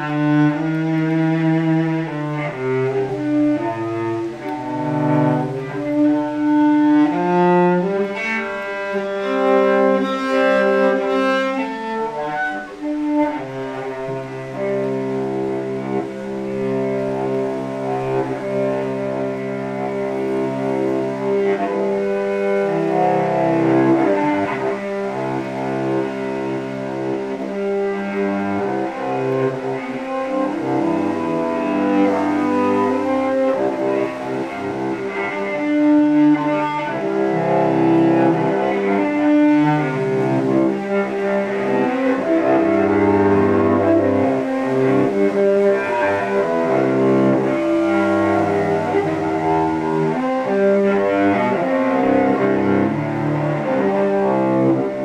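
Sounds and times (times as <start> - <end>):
bowed cello: 0.0 - 55.0.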